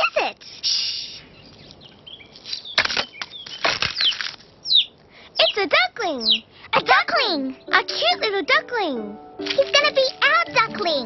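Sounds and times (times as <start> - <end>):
duckling cheeping: 1.1 - 5.6, 6.2 - 6.5
eggshell cracking: 2.4 - 4.6.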